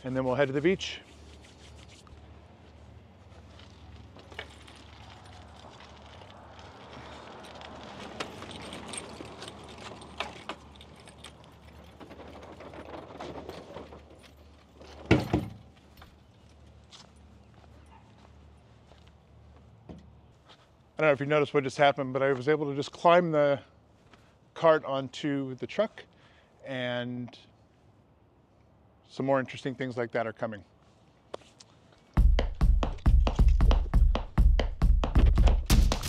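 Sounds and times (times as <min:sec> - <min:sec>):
cart rattling and knocking: 0:07.9 - 0:15.7.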